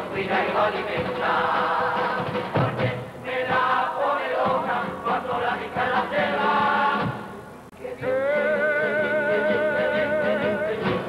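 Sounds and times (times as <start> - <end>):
men's chorus singing in harmony: 0.0 - 11.0.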